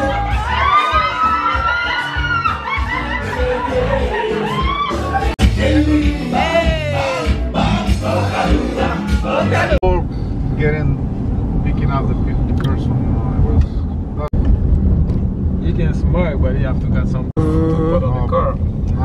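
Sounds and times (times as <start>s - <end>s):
party music: 0.0s - 9.8s
car cabin rumble: 9.8s - 19.0s
people talking: 15.6s - 19.0s.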